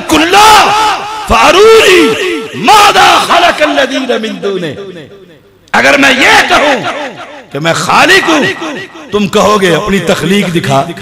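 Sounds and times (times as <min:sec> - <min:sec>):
man chanting over loudspeaker: 0:00.0 - 0:11.0.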